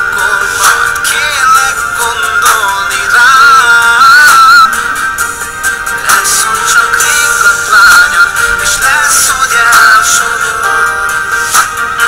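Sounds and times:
pop song with lead vocal: 0.0s - 12.0s.

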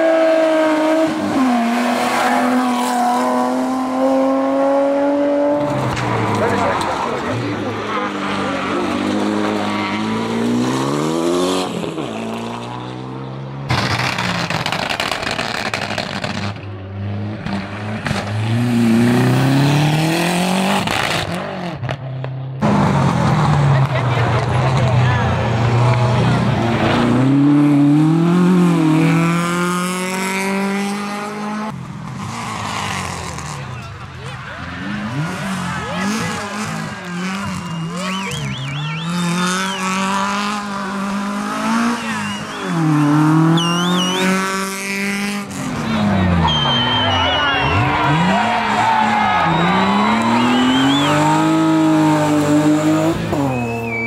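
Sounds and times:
rally cars accelerating hard: 0.0s - 54.0s.

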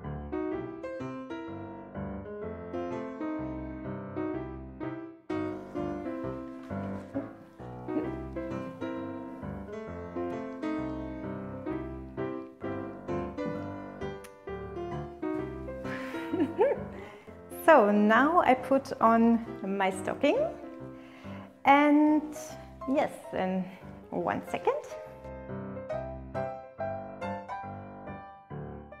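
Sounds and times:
piano music: 0.0s - 29.0s.

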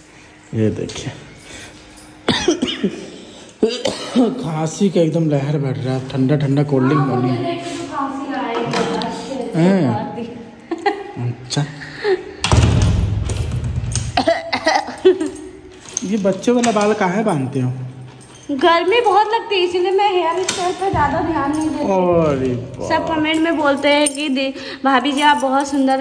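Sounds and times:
person coughing: 2.3s - 4.5s, 14.1s - 15.4s.

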